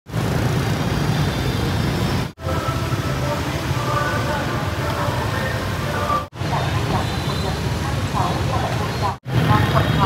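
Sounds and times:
city road traffic noise: 0.1s - 10.0s.

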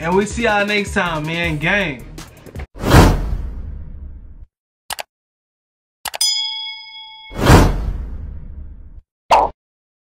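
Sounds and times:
bell ding: 6.2s - 7.7s.

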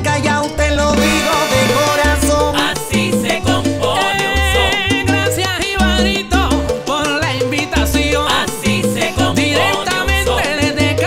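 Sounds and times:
salsa music: 0.0s - 11.0s.

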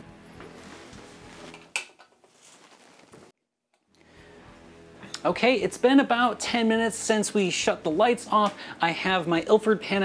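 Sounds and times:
faint background music: 4.0s - 10.0s.

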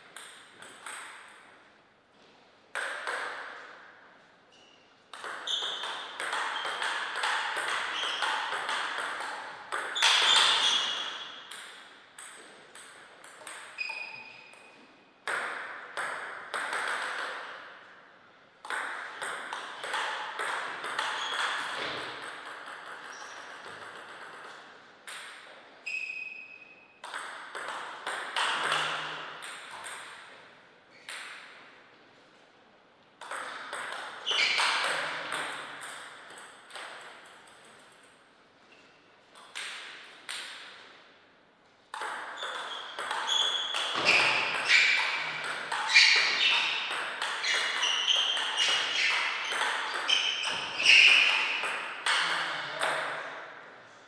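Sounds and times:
table tennis ball hits: 0.1s - 1.6s, 2.7s - 3.9s, 5.1s - 17.9s, 18.6s - 31.7s, 33.2s - 38.2s, 39.4s - 41.0s, 41.9s - 53.6s
short squeak: 10.0s - 11.3s, 13.8s - 14.6s, 25.8s - 26.8s, 34.3s - 34.7s, 47.4s - 51.4s.

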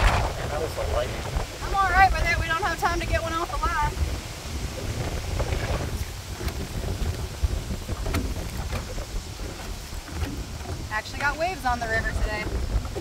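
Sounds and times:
water splashing against boat: 0.0s - 13.0s
wind buffeting microphone: 0.0s - 13.0s.

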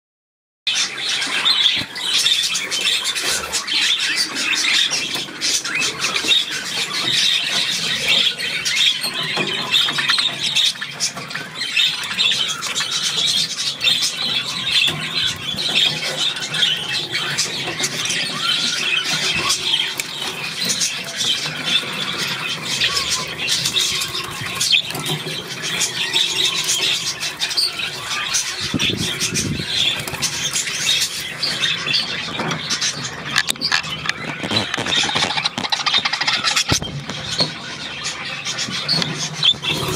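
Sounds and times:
budgerigars chattering: 0.7s - 39.9s.

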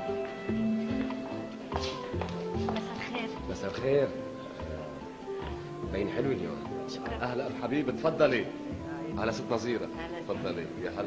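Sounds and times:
drama background music: 0.0s - 11.0s.

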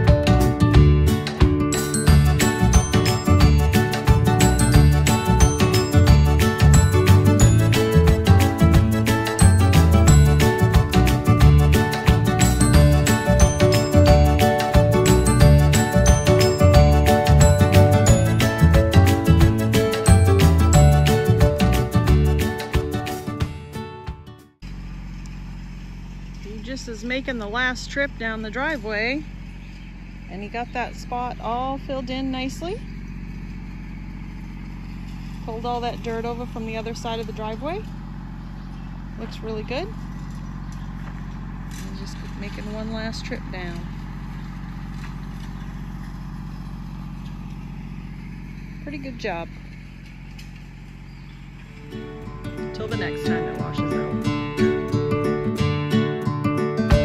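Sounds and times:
background music: 0.0s - 24.5s, 51.8s - 57.0s
tractor diesel engine running: 0.0s - 57.0s
woman speaking: 26.5s - 29.3s, 30.3s - 32.8s, 35.5s - 37.9s, 39.2s - 40.0s, 41.8s - 43.9s, 48.9s - 49.5s, 52.6s - 54.0s.

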